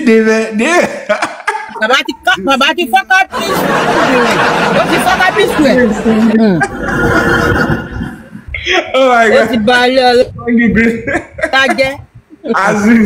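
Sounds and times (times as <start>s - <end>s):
people laughing: 0.6s - 8.6s, 10.8s - 12.0s
many voices talking: 1.7s - 13.0s.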